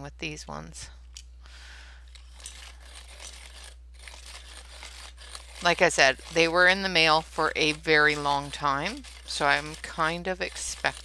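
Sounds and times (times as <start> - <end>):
pencil grinding in sharpener: 2.5 - 11.0.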